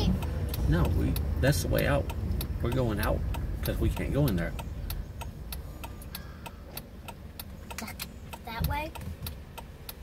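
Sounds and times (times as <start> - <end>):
car engine idling: 0.0 - 10.0
car turn signal ticking: 0.0 - 10.0.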